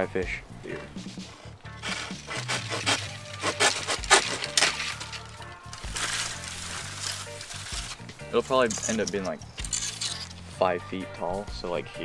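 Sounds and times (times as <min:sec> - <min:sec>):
background music: 0:00.0 - 0:12.0
knife hacking bamboo: 0:01.8 - 0:05.2.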